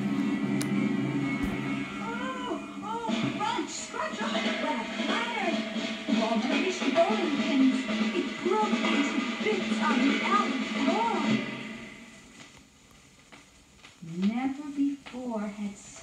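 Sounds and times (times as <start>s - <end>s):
voice over music: 0.0s - 12.0s.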